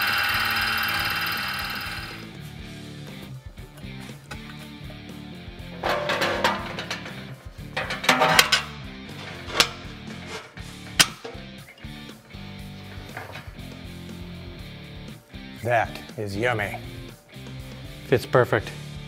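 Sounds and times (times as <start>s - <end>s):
background music: 0.0s - 19.0s
metal scraping: 5.6s - 14.0s.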